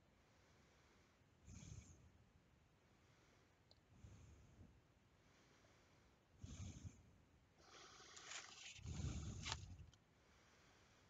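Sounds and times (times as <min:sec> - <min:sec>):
breath through the nose: 0:05.3 - 0:11.0.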